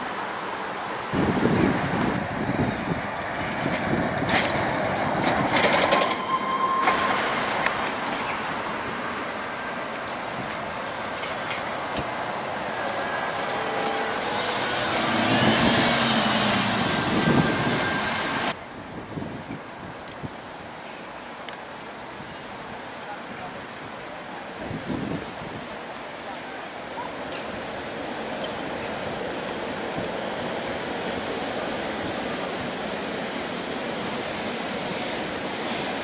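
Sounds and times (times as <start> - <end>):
buses driving past: 0.0 - 18.9
high squeal: 1.2 - 3.6, 5.8 - 7.6, 12.7 - 18.6.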